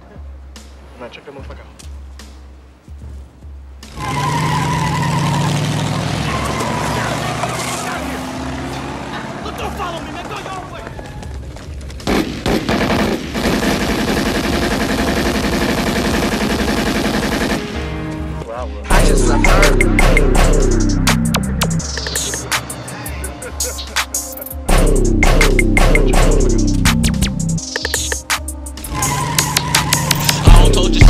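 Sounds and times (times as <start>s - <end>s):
rapid burst of gunfire: 12.0s - 17.7s.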